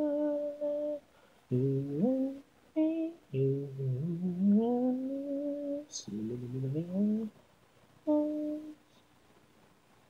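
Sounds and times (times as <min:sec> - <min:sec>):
a cappella voice singing: 0:00.0 - 0:07.4, 0:08.0 - 0:09.0.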